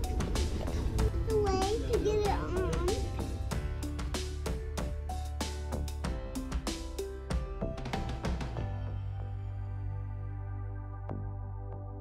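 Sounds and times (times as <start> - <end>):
music with steady beat: 0.0 - 9.3
child making wordless sounds: 1.1 - 3.2.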